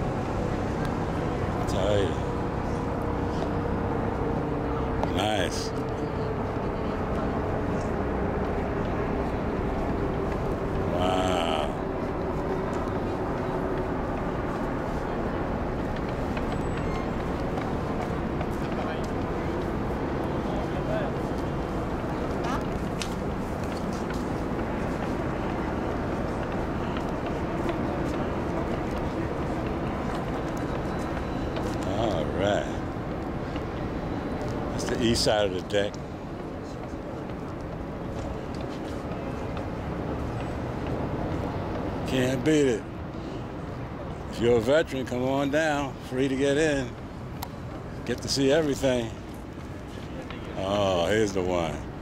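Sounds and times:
outdoor background noise: 0:00.0 - 0:52.0
person's voice: 0:10.9 - 0:11.8.

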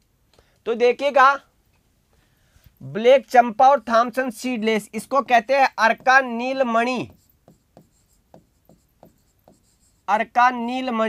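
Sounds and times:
pen scratching on board: 0:04.9 - 0:10.1.

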